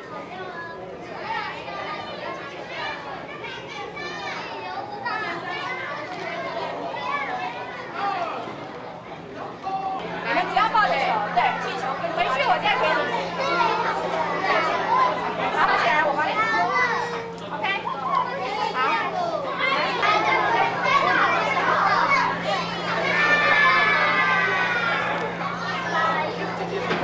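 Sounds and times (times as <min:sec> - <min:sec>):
children talking and calling out: 0:00.0 - 0:27.0
steady low hum: 0:08.9 - 0:27.0.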